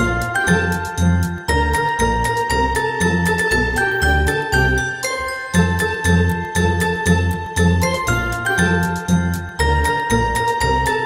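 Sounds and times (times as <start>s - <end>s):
jingling bells: 0.0s - 11.0s
upbeat festive music: 0.0s - 11.0s.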